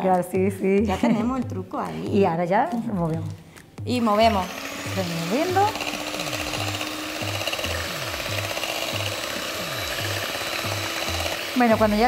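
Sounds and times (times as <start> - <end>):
background music: 0.0 - 12.0
electric mixer in metal bowl: 3.9 - 12.0.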